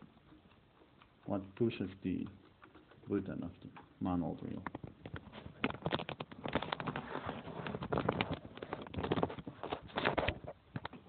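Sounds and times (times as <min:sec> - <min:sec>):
leather case rubbing and knocking: 0:04.6 - 0:11.0.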